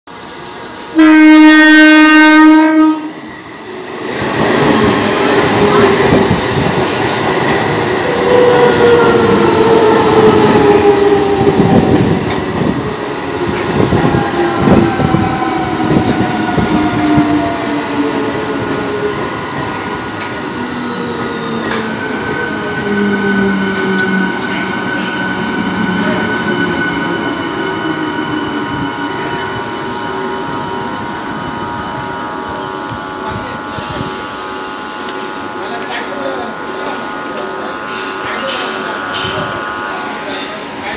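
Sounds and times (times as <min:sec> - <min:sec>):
train wheels rumbling on rail: 0:00.4 - 0:40.9
train horn blast: 0:00.9 - 0:03.2
train whine falling in pitch: 0:00.9 - 0:03.6.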